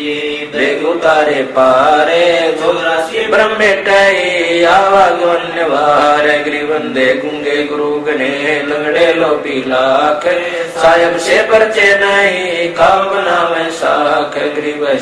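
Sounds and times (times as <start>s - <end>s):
man chanting melodically: 0.0s - 15.0s.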